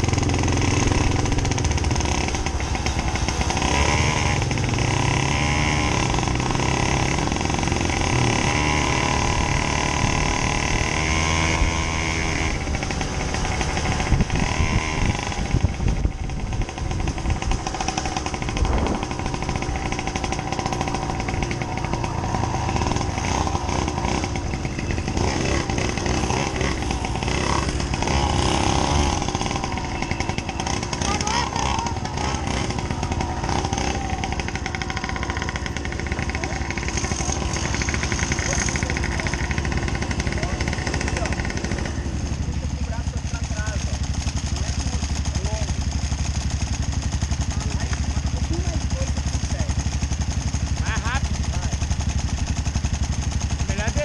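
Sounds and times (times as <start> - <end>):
moped engine: 0.0 - 54.0
motorcycle engine revving: 0.0 - 54.0.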